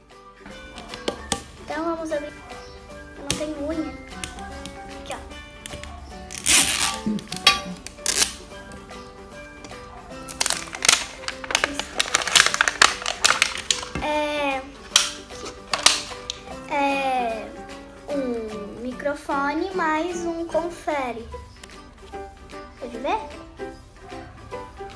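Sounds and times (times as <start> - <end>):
background music: 0.0 - 24.9
plastic wrapping crinkling: 5.7 - 8.5, 10.2 - 14.2, 14.8 - 16.5.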